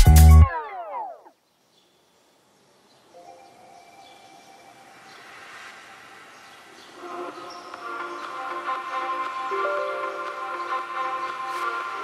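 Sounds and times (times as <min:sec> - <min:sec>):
electronic music: 0:00.0 - 0:01.3, 0:07.0 - 0:12.0.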